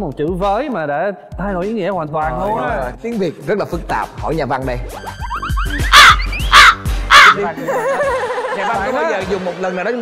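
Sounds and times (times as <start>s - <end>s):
background music: 0.0s - 10.0s
crow cawing: 5.9s - 7.4s.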